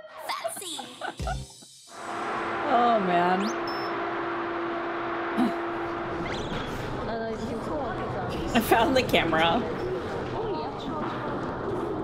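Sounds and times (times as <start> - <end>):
steady held tone: 1.9 - 7.2
studio background noise: 1.9 - 12.0.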